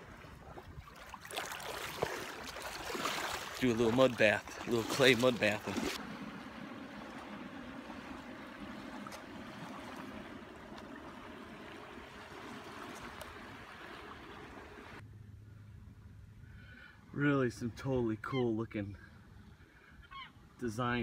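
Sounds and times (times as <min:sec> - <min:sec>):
small waves on a beach: 0:00.0 - 0:15.0
distant motorboat drone: 0:05.7 - 0:16.9
low hum: 0:05.7 - 0:17.1.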